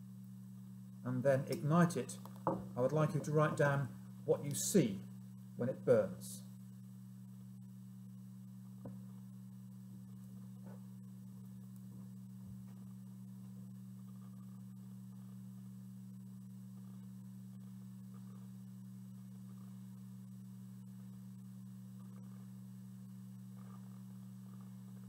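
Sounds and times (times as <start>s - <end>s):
steady low two-tone hum: 0.0s - 25.0s.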